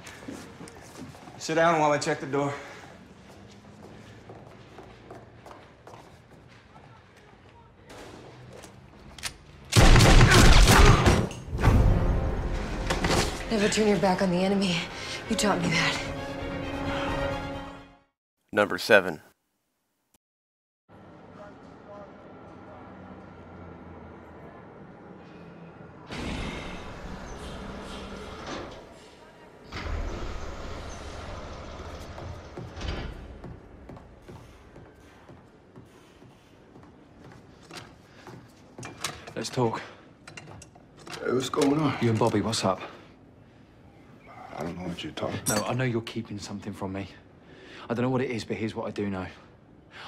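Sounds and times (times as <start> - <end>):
rapid volley of gunshots: 9.8 - 11.2.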